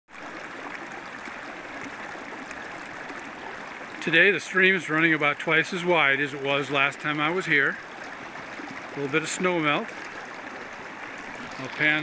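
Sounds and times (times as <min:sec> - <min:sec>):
stream babbling over rocks: 0:00.1 - 0:12.0.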